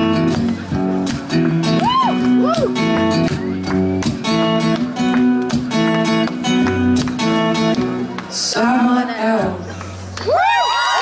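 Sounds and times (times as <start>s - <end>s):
acoustic guitar strumming: 0.0s - 10.1s
crowd noise: 0.0s - 11.0s.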